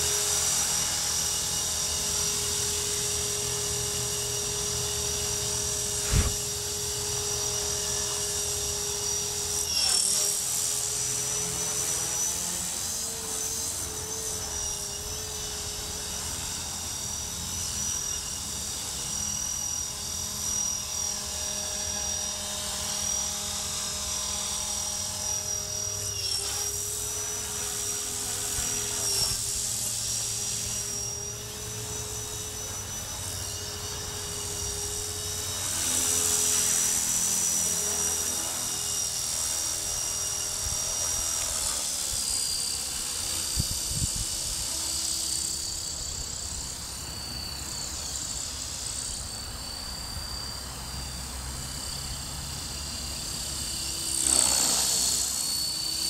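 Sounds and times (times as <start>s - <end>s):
rc helicopter motor whine: 0.0s - 56.0s
short thump: 6.0s - 6.4s.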